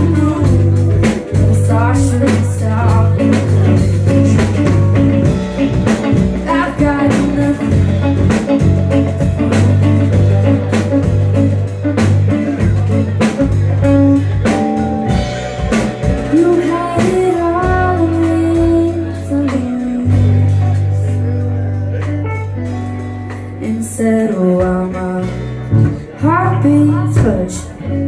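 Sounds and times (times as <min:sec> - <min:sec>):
person singing: 0:00.0 - 0:22.2, 0:23.5 - 0:28.0
drum kit beat: 0:00.0 - 0:27.8
electric bass line: 0:00.0 - 0:28.0
electric guitar: 0:00.0 - 0:28.0
keyboard: 0:00.0 - 0:28.0.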